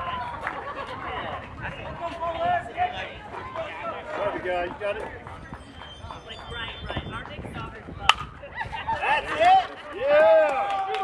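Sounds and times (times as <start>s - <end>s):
spectators' voices and calls: 0.0s - 11.0s
bat cracking a ball: 8.1s - 8.4s.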